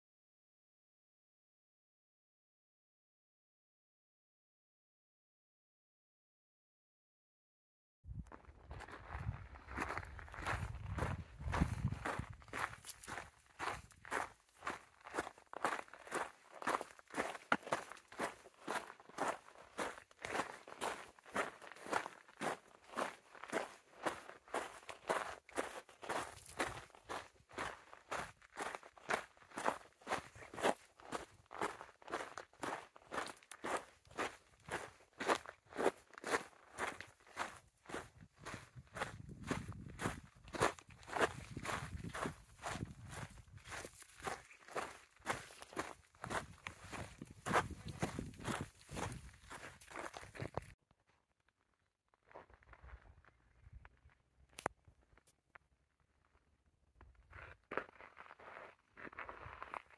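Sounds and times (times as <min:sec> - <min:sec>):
footsteps on dirt trail: 0:08.3 - 0:50.8, 0:57.0 - 0:59.9.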